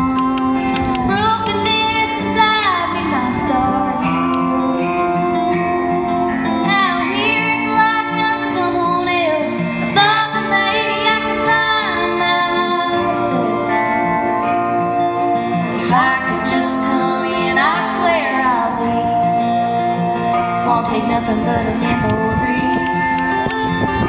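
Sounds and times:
instrumental backing music: 0:00.0 - 0:24.0
woman singing country ballad: 0:00.1 - 0:24.0.

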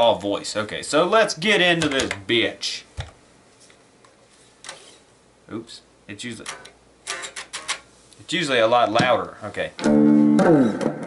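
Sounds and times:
sharp click: 0:06.4 - 0:07.8
quiet electric guitar strum: 0:09.8 - 0:11.0.

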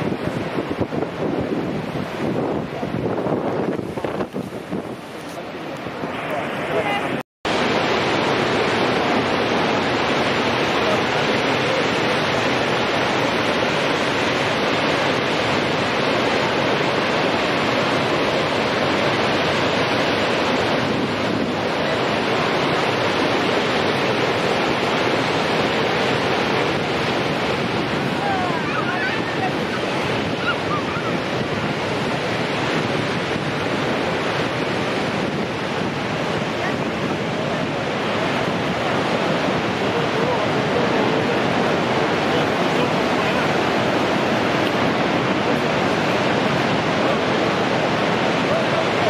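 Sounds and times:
waterfall rushing: 0:00.0 - 0:49.0.

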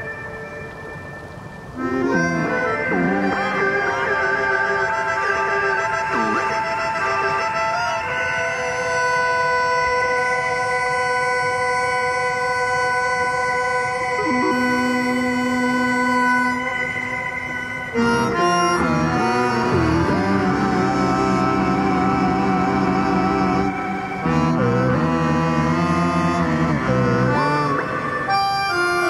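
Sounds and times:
synthesizer held tones: 0:00.0 - 0:08.2, 0:13.7 - 0:29.0
wavering gliding synth tones: 0:00.0 - 0:09.7, 0:12.7 - 0:29.0
buzzing drone: 0:00.0 - 0:29.0.

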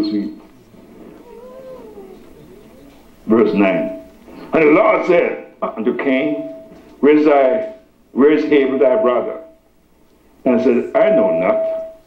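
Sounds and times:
high drawn-out call: 0:00.4 - 0:04.2.

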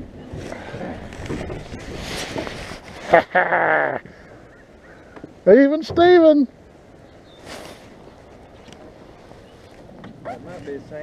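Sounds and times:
clothing rustling on microphone: 0:00.2 - 0:03.2.

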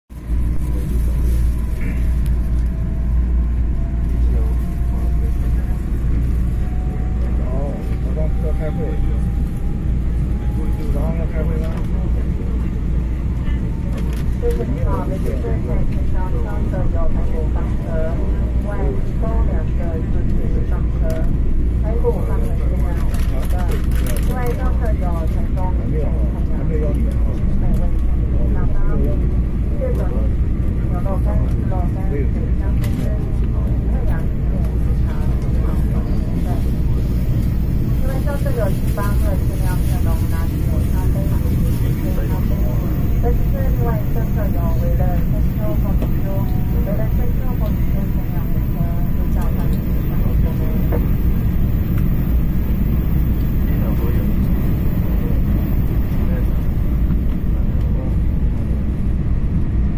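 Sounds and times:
passengers talking: 0:00.1 - 0:59.9.

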